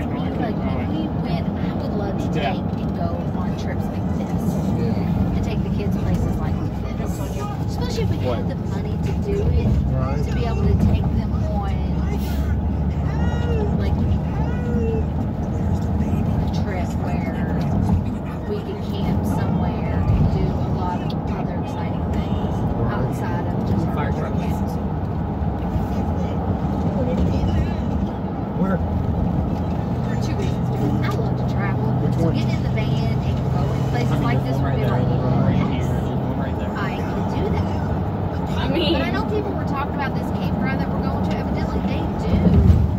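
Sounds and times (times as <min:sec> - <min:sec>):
car cabin road and engine drone: 0:00.0 - 0:42.9
indistinct voices: 0:29.5 - 0:42.9.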